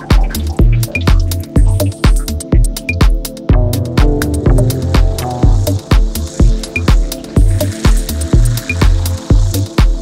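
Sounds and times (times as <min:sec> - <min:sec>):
kick drum: 0:00.0 - 0:07.6
deep bassline: 0:00.0 - 0:10.0.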